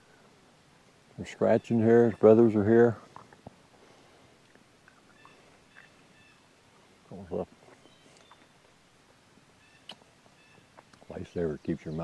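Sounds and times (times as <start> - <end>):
high bird calls: 1.4 - 2.9, 4.9 - 6.5, 7.7 - 8.7, 9.6 - 12.0.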